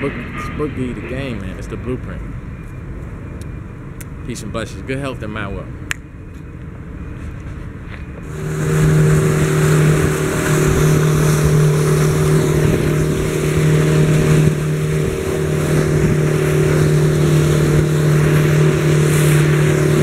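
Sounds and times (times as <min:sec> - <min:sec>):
wind: 0:00.0 - 0:20.0
motorboat engine droning: 0:06.1 - 0:20.0
rushing water: 0:08.3 - 0:20.0.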